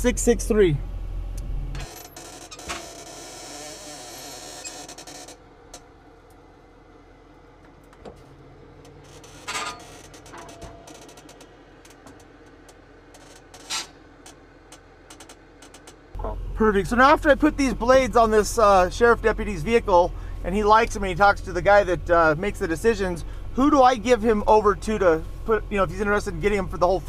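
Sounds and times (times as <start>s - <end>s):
tow truck moving: 0.0s - 27.0s
faint clicks and rattles: 7.6s - 16.4s.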